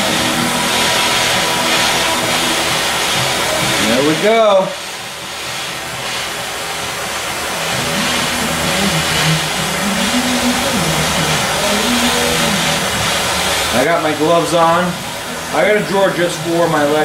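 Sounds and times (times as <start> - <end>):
gas torch hissing: 0.0 - 17.0.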